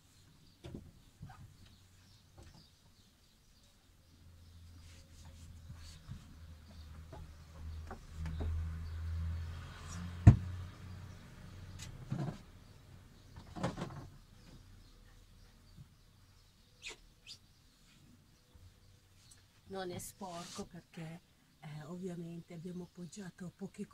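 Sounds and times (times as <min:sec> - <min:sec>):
knocks and clicks of fridge: 0:10.3 - 0:10.5.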